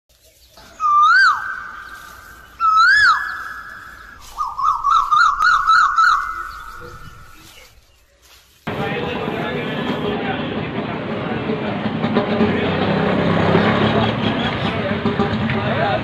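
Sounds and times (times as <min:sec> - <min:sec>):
whistled bird-like calls with echo: 0:00.6 - 0:07.7.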